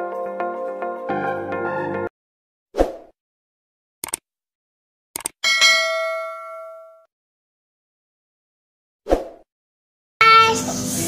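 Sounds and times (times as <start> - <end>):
quick mouse clicks: 4.0 - 4.2
notification bell ding: 5.4 - 7.1.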